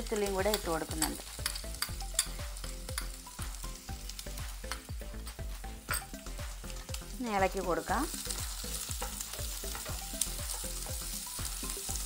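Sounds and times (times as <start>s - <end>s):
garlic sizzling in hot oil: 0.0s - 12.0s.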